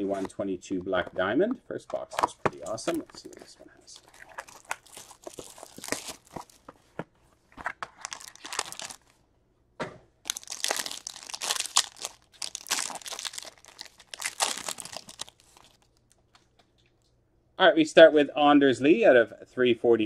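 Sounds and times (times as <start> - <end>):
wrapper tearing and crinkling: 3.9 - 6.6, 7.9 - 9.1, 10.3 - 16.4.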